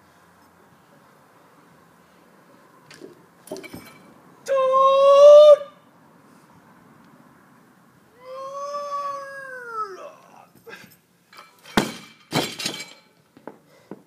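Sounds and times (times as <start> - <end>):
loud vocal cry: 8.2 - 10.5
barbell crashing onto rubber mats: 11.6 - 13.0.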